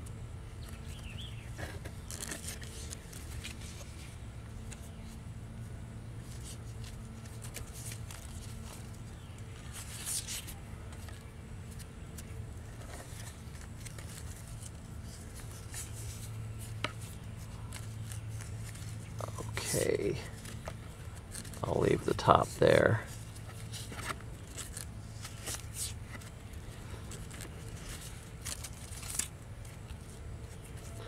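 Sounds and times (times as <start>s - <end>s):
tape peeling and rustling: 0.6s - 31.0s.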